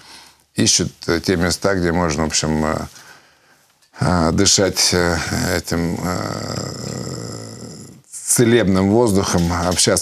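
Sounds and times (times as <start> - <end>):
man humming in hesitation: 5.9 - 8.0.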